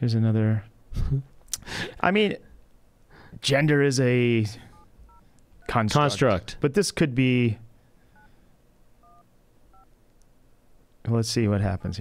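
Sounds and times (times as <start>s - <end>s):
phone keypad dialing tones: 9.0s - 9.9s.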